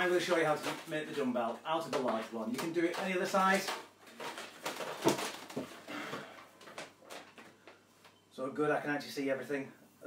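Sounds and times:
plastic bag crinkling: 0.0 - 7.8.

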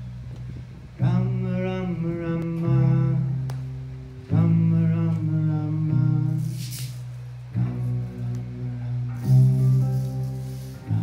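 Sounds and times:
acoustic guitar: 1.0 - 11.0.

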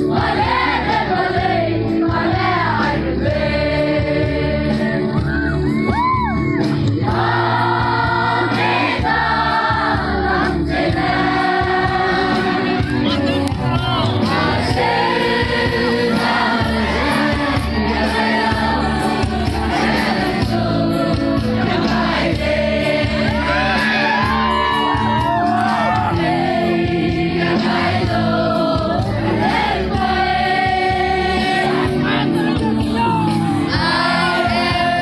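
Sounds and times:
amplified backing music with beat: 0.0 - 35.0
crowd noise: 4.6 - 35.0.

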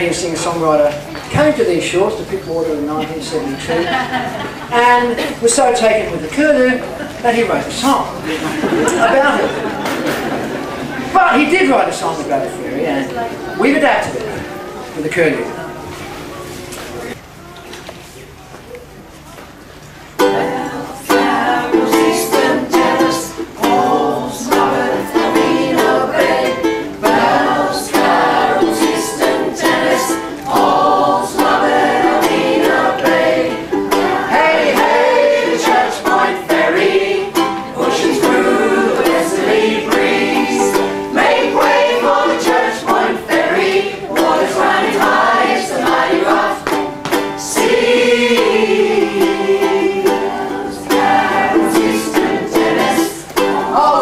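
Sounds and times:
group singing together: 8.2 - 11.2, 20.2 - 54.0
strummed ukulele: 20.2 - 54.0.

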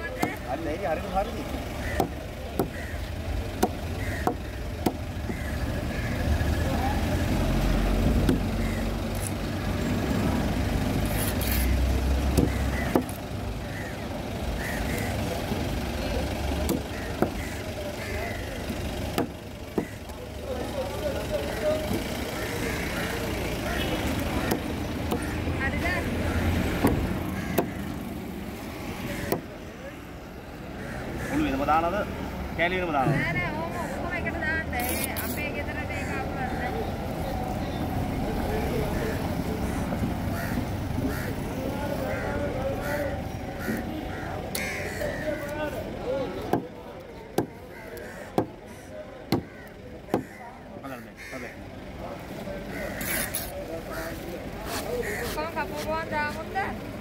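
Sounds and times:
passing vehicle engine: 0.4 - 47.0.

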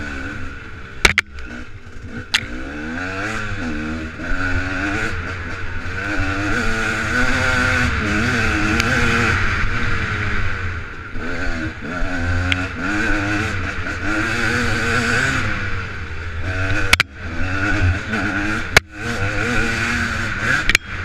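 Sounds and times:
dirt bike engine revving: 0.0 - 21.0.

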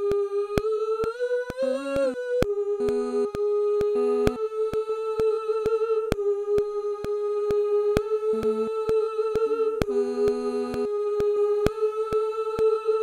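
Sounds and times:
vocals humming in harmony: 0.0 - 13.0.

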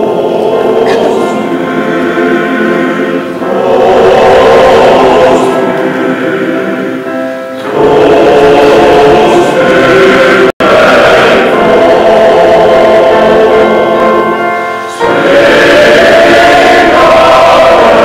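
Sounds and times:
men's choir singing chords: 0.0 - 18.0.

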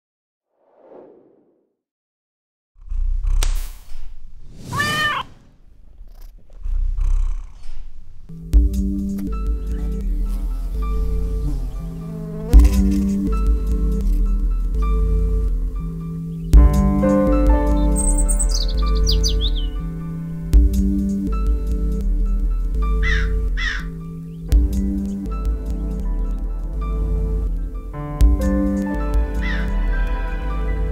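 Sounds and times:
soft ambient music: 8.3 - 30.9
bird calls: 17.6 - 19.9, 22.9 - 24.5.

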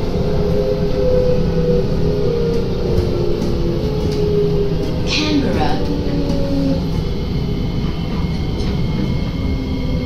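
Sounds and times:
train motor whine: 0.0 - 10.0
train wheel and track rumble: 0.0 - 10.0.

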